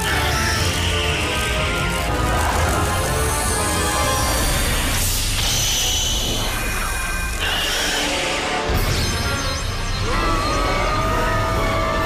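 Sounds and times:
cartoon action music: 0:00.0 - 0:12.0.

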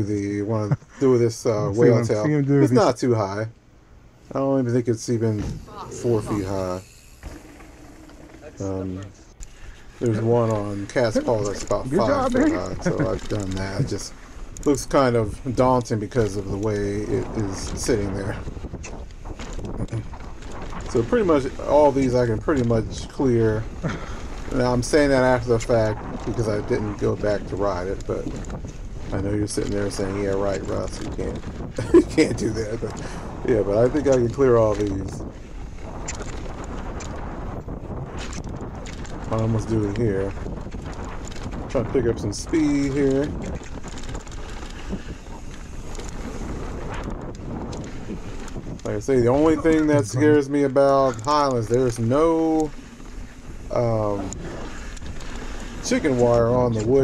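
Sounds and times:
bike tyres rolling on dirt: 0:04.2 - 0:57.0
wind on microphone: 0:05.1 - 0:57.0
small bike rattles: 0:05.5 - 0:08.8, 0:09.9 - 0:57.0.

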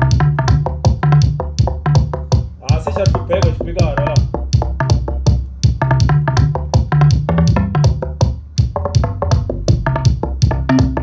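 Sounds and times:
bassline: 0:00.0 - 0:11.0
drum machine beat: 0:00.0 - 0:11.0.

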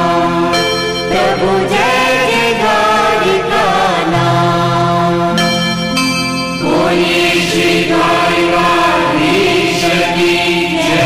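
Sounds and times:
person singing a hymn: 0:00.0 - 0:05.5, 0:06.6 - 0:11.0
held instrumental tones: 0:00.0 - 0:11.0.

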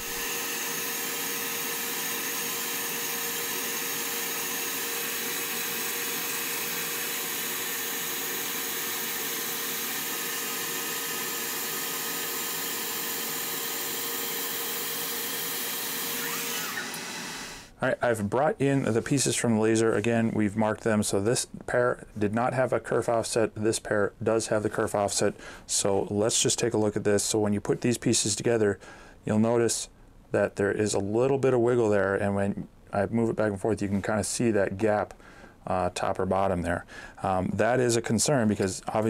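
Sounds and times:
fans whirring hiss: 0:00.0 - 0:39.0.

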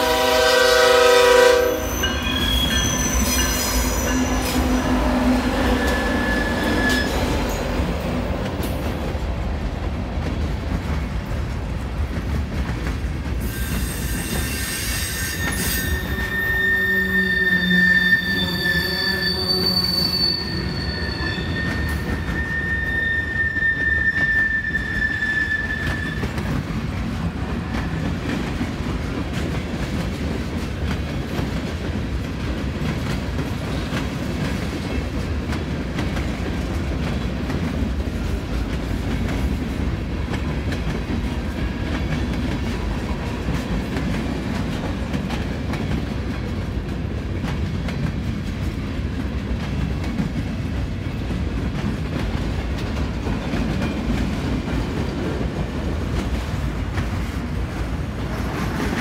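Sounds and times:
steel wheels rattling on rail: 0:00.0 - 0:59.0
high-pitched wheel squeal: 0:01.7 - 0:07.6, 0:13.4 - 0:26.4.

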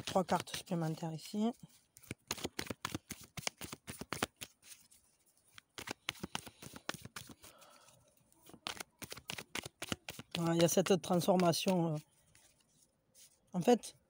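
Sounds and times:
cards being shuffled: 0:00.0 - 0:13.8.

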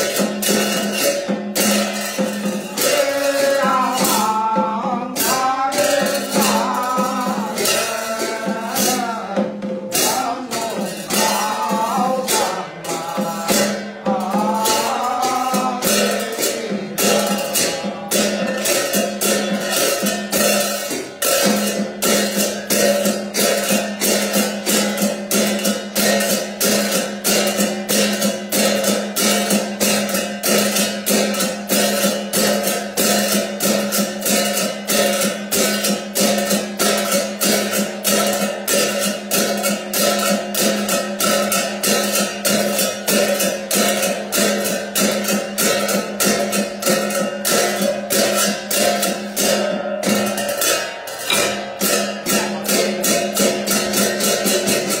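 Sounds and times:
jingling hand percussion: 0:00.0 - 0:55.0.

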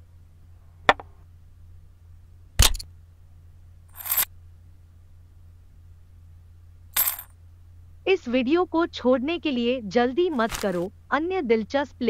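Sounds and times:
high coin-like clinking jingles: 0:03.9 - 0:04.3, 0:07.0 - 0:07.3.

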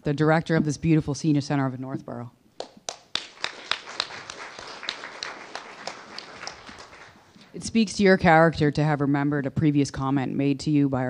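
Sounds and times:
sharp close hand clap: 0:02.6 - 0:07.2
crowd applauding: 0:02.6 - 0:07.4.

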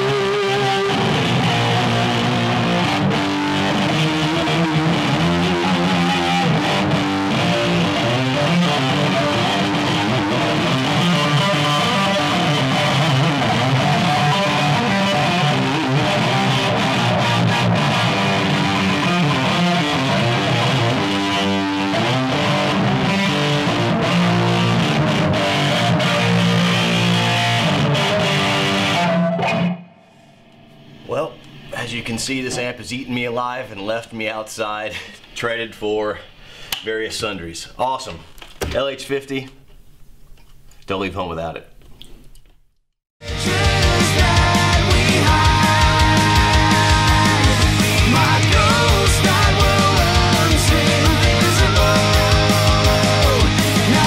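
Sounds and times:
loud electric guitar chords and riffs: 0:00.0 - 0:31.8, 0:43.2 - 0:54.0.

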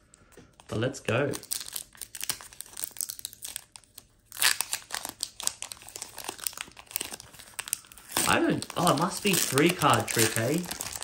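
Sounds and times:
foil wrapper crinkling and tearing: 0:01.2 - 0:11.0.

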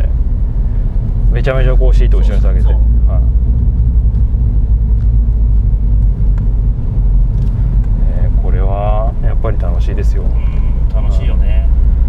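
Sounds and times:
car interior engine rumble: 0:00.0 - 0:12.0.

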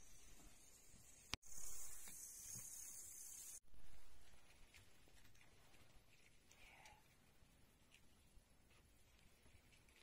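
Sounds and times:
steady high-pitched hiss: 0:00.0 - 0:04.6.

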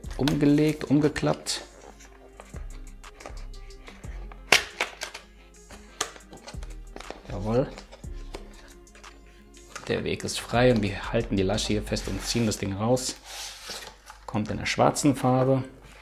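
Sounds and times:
paper rustling: 0:00.0 - 0:10.4, 0:11.8 - 0:16.0
quiet background music: 0:00.0 - 0:16.0.

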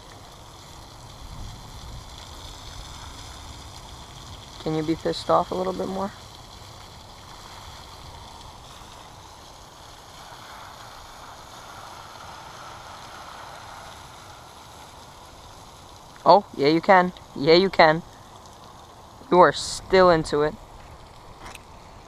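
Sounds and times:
steady outdoor background hiss: 0:00.0 - 0:22.0.

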